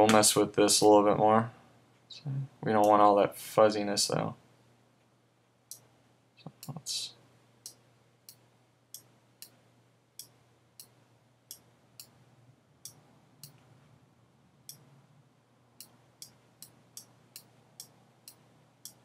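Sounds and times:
faint low hum: 0.0 - 19.0.

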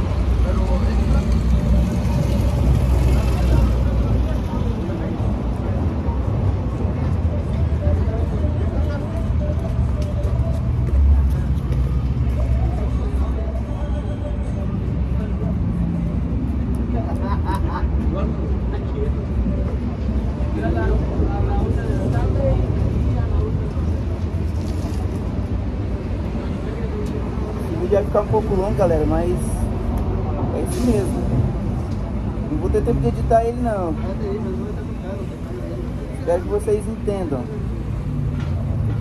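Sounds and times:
faint voices: 0.0 - 39.0.

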